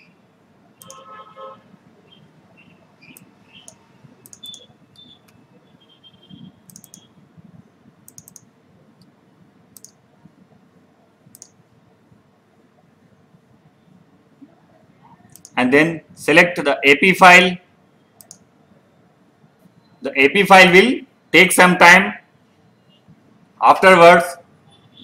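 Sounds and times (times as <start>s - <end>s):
faint room noise: 0.0s - 25.0s
computer mouse clicking: 0.8s - 1.0s, 3.1s - 5.4s, 6.7s - 7.1s, 8.0s - 9.1s, 9.7s - 10.0s, 11.3s - 11.6s, 15.3s - 15.6s, 18.2s - 18.5s.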